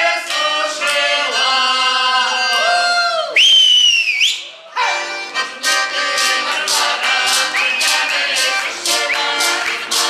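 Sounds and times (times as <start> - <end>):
accordion folk music with voices: 0.0 - 3.8, 4.4 - 10.0
loud high whistle: 3.3 - 4.6.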